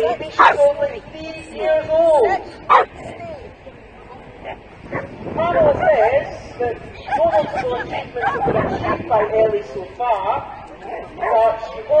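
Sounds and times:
dog barking sharply: 0.4s - 0.6s
dog yapping: 0.4s - 0.6s, 2.7s - 2.9s.

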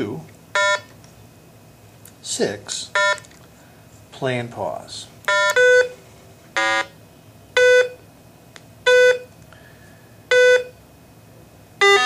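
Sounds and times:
short electronic beeps: 5.3s - 6.0s, 7.6s - 8.0s, 8.9s - 9.3s, 10.3s - 10.8s.

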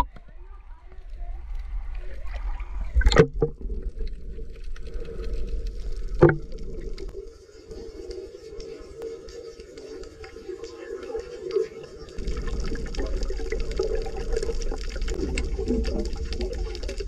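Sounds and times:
sea water sloshing and splashing: 12.1s - 17.0s.

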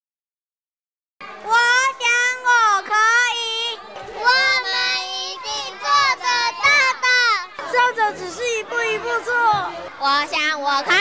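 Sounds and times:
children's high-pitched voices: 1.2s - 11.0s.

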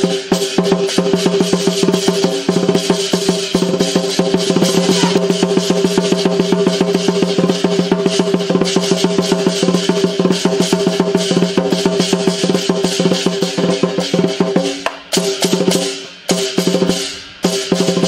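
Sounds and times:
cymbals ringing: 0.0s - 18.0s
drum beaten fast: 0.0s - 18.0s.

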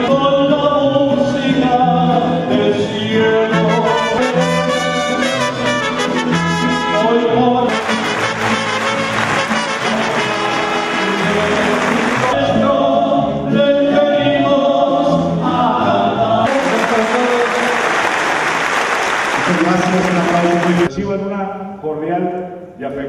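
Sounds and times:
band music with brass: 0.0s - 21.0s
audience applauding: 7.7s - 12.4s, 16.5s - 20.9s.

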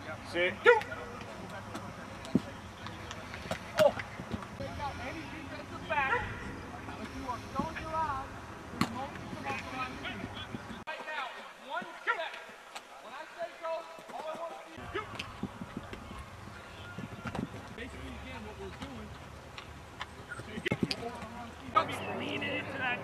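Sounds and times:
voices calling out: 0.0s - 23.0s.

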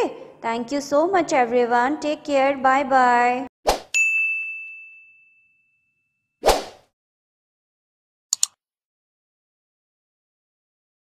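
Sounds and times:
bright ding: 4.0s - 6.1s.

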